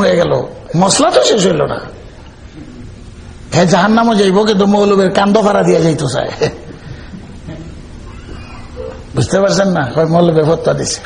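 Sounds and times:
man lecturing: 0.0 - 2.0, 3.5 - 6.6, 9.1 - 11.0.

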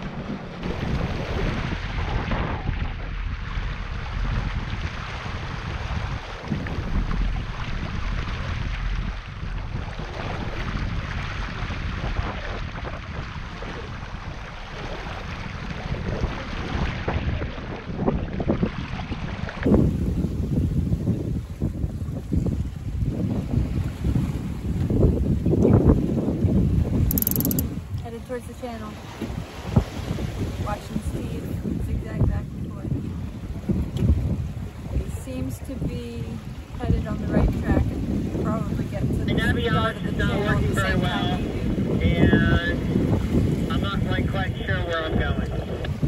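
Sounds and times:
water rushing along hull: 0.0 - 46.0
wind buffeting microphone: 0.0 - 46.0.

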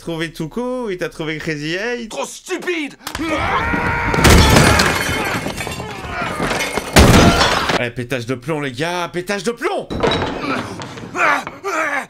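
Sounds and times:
objects breaking and clattering: 3.2 - 7.8, 9.9 - 11.9
man yelling: 10.4 - 12.0.

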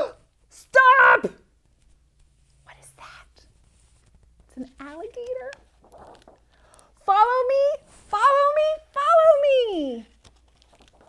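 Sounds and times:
woman whispering: 2.6 - 3.5.

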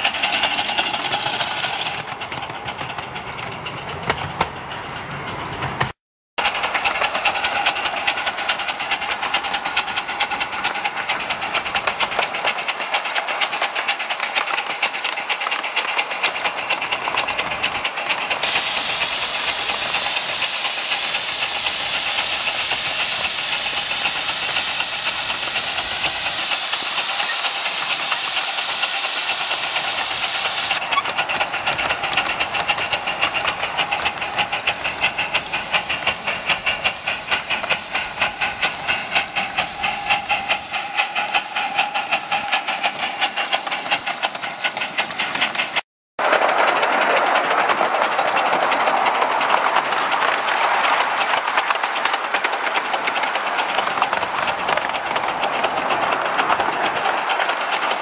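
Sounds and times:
steam hissing: 0.0 - 45.8, 46.4 - 58.0
steam locomotive exhaust beats: 0.0 - 58.0.

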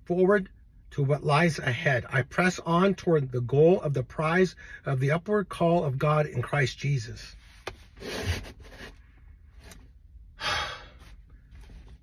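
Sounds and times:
man sighing: 10.4 - 11.0.

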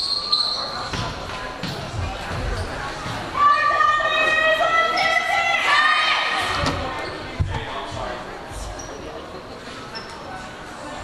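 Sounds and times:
voices echoing in a gymnasium: 0.0 - 11.0.

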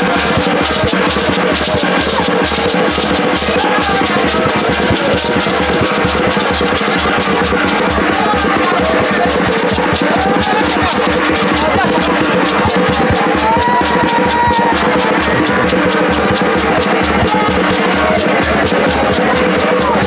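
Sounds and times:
gourd shakers rattling: 0.0 - 20.0
steady drum beat: 0.0 - 20.0
voices singing: 0.0 - 20.0.

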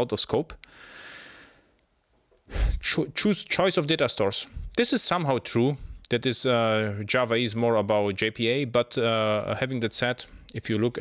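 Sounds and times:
person speaking: 9.2 - 11.0.

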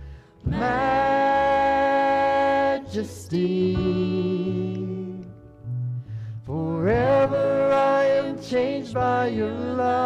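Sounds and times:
worship band playing live: 0.0 - 10.0.

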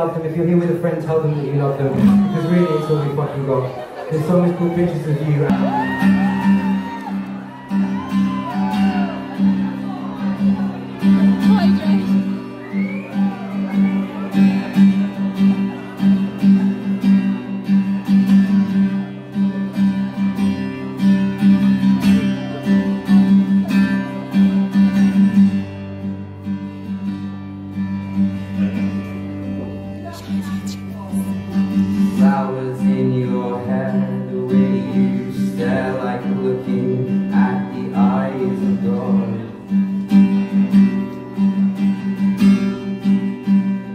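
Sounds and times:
man singing: 0.0 - 6.6, 30.1 - 39.9
acoustic guitar strumming: 0.0 - 43.9.

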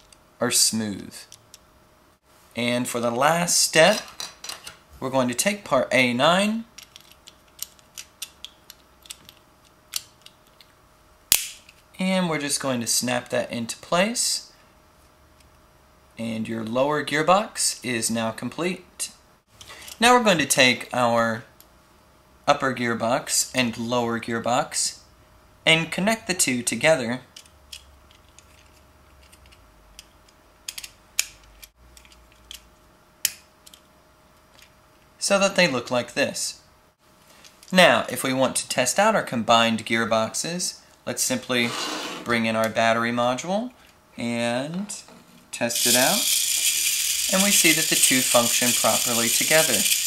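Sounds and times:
plastic parts clicking together: 6.8 - 10.7, 27.4 - 32.6, 33.2 - 33.9.

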